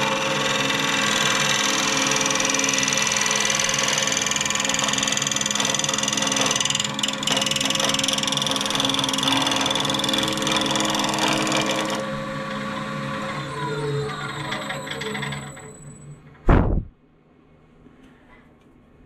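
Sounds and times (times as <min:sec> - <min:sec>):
lathe motor hum: 0:00.0 - 0:15.8.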